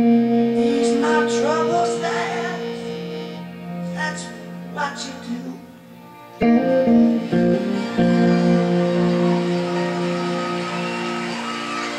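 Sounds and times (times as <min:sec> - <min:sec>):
electric guitar chord ringing: 0:00.0 - 0:11.9.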